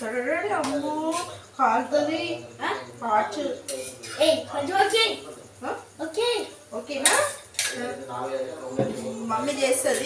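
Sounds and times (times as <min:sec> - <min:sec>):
spoon clinking against steel container: 0:03.7 - 0:04.2.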